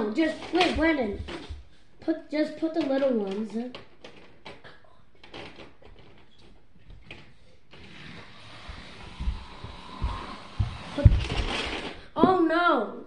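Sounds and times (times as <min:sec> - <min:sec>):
child's footsteps thumping on floor: 0:00.6 - 0:01.8, 0:08.7 - 0:12.5
rustling: 0:02.6 - 0:12.1.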